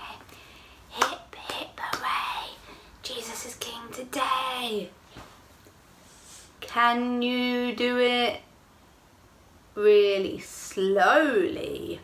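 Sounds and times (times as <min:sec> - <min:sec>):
woman whispering a chant: 0:00.9 - 0:04.1.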